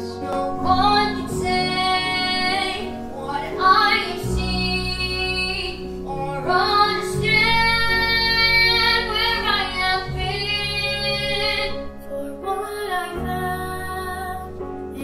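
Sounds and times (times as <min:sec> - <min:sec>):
instrumental accompaniment: 0:00.0 - 0:12.6.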